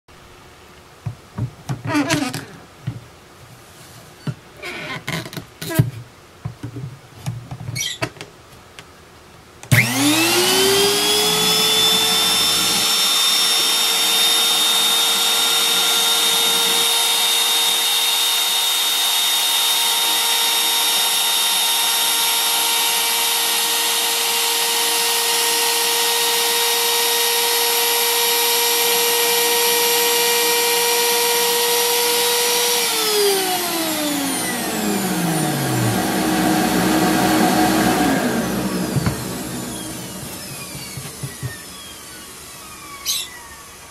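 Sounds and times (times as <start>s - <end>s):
trim router whining: 9.7s - 43.9s.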